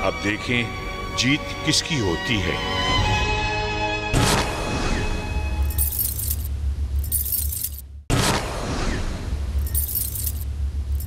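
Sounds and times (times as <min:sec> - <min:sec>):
metallic clinking of chains: 0:05.6 - 0:07.8, 0:09.6 - 0:11.0.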